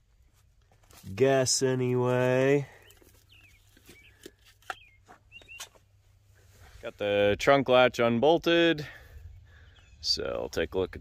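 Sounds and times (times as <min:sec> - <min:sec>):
faint bird chirps: 0:02.7 - 0:05.8, 0:09.2 - 0:11.0.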